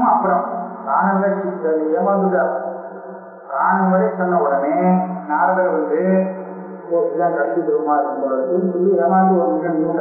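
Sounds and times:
man chanting: 0.0 - 2.6, 3.5 - 6.3, 6.9 - 10.0.

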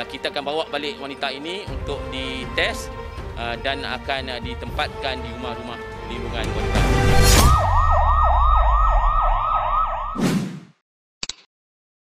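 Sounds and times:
electronic siren yelping: 7.3 - 10.2.

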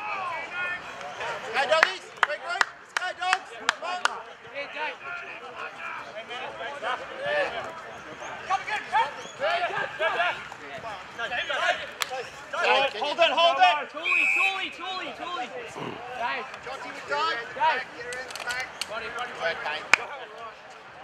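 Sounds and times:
whistle blast: 14.0 - 14.8.

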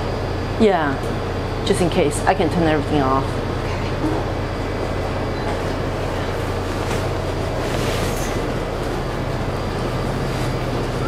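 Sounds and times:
machinery drone with low hum: 0.0 - 11.0.

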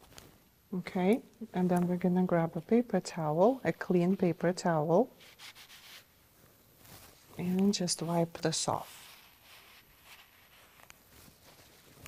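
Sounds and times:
paper towel rustling: 6.8 - 12.0.

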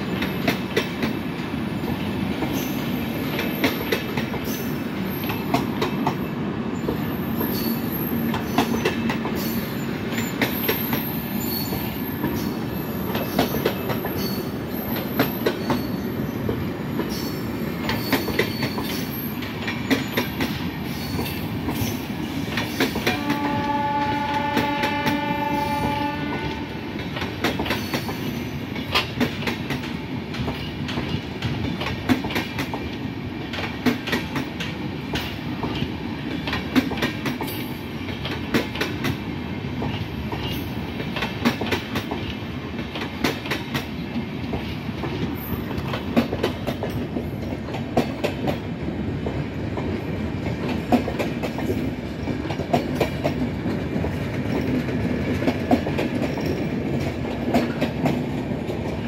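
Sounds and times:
train coaches rumbling past: 0.0 - 59.0
high wheel squeals: 9.4 - 16.2
train horn: 23.0 - 27.0
wheels clicking over rail joints: 27.0 - 59.0.

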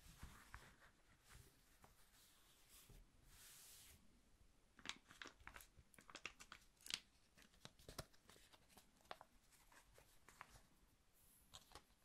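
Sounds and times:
crinkling material crackling: 4.8 - 10.8.

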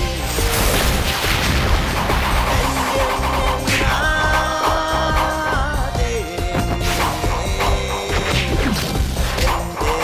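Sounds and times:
dramatic soundtrack music: 0.0 - 10.0.

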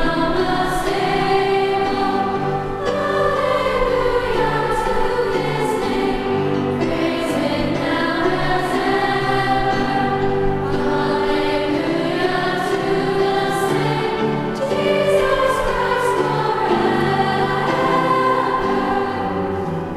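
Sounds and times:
women's choir singing: 0.0 - 19.9.

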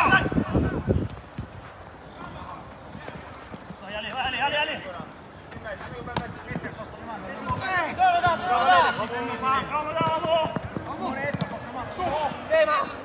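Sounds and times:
players shouting: 6.5 - 13.0
football kick: 9.8 - 12.2.

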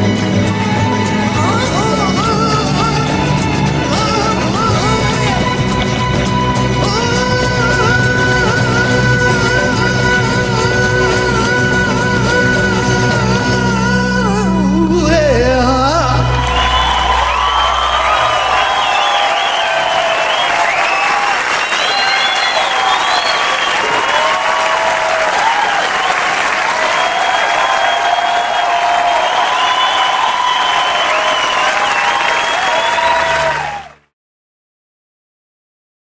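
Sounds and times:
audience applauding and cheering: 0.0 - 12.4, 16.0 - 34.1
band's low note: 14.7 - 20.4.

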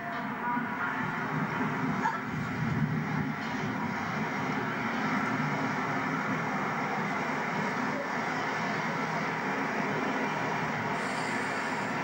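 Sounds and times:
diesel train passing: 0.0 - 12.0.

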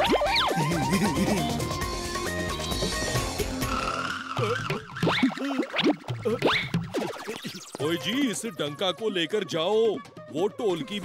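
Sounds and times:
cartoon background music: 0.0 - 11.0
playful music with swooping notes: 0.0 - 11.0.

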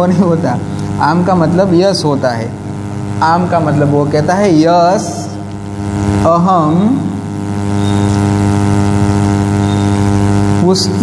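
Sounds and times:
loud steady low hum: 0.0 - 11.0.

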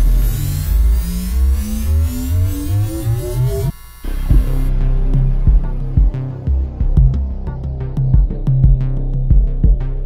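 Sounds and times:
low pulsing beat: 0.0 - 10.0.

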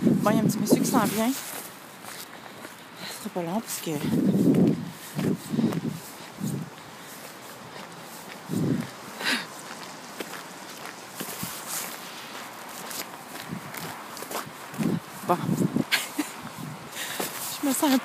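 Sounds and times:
footsteps crunching in snow: 0.0 - 18.0.

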